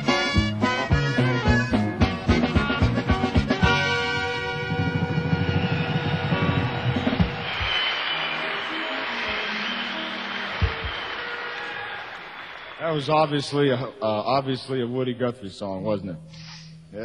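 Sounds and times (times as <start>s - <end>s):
live band playing: 0.0s - 12.6s
audience applause: 5.4s - 14.0s.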